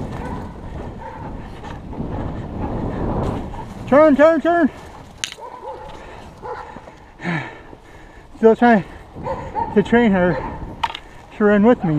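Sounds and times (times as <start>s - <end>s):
bike rolling over grass: 0.0s - 7.1s.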